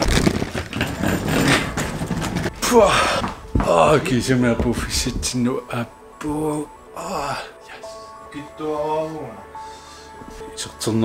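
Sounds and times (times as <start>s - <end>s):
suitcase rolling over cobblestones: 0.0s - 5.3s
footsteps: 0.0s - 5.5s.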